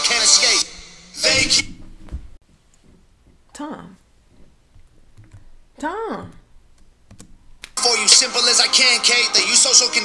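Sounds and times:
rap track with hip hop beat: 0.0s - 1.7s, 7.8s - 10.0s.

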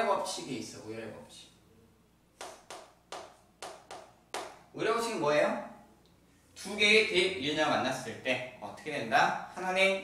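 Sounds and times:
chalk tapping on chalkboard: 2.4s - 4.7s.

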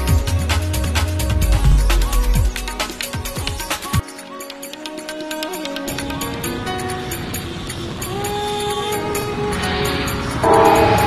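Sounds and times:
background music: 0.0s - 11.0s
train horn: 10.4s - 11.0s.

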